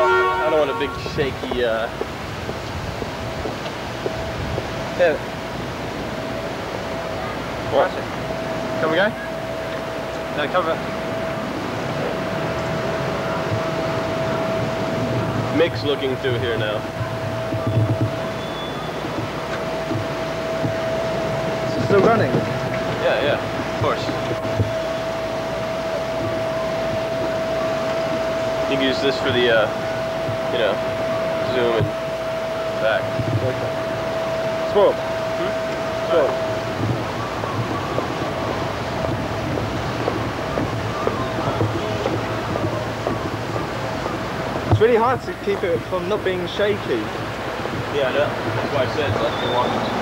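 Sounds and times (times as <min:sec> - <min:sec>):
thin whine: 0:00.0 - 0:50.0
traffic and street noise: 0:00.0 - 0:50.0.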